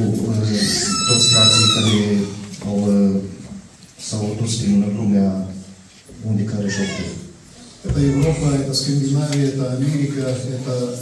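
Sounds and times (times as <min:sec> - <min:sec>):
man speaking into a microphone: 0:00.0 - 0:11.0
high feedback squeal: 0:00.6 - 0:02.3.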